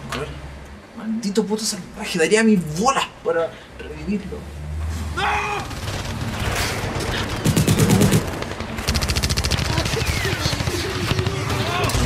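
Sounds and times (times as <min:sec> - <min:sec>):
rapid automatic gunfire: 0:05.7 - 0:12.0.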